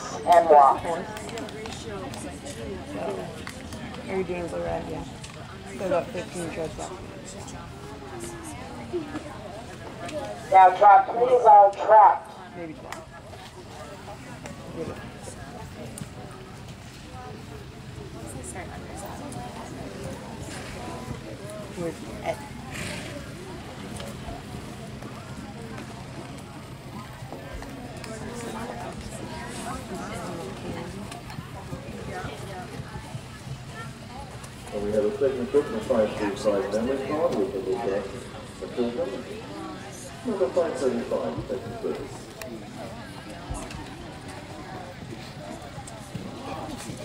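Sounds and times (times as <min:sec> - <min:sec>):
indistinct voices: 0:00.0 - 0:03.4
indistinct background talking: 0:00.0 - 0:47.0
horses trotting on sand: 0:40.3 - 0:47.0.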